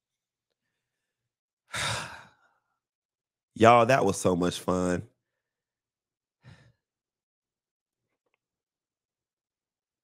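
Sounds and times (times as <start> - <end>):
man sighing: 1.7 - 2.6.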